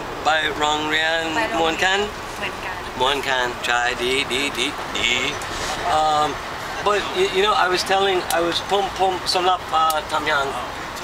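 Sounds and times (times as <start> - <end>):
people talking: 0.2 - 10.7.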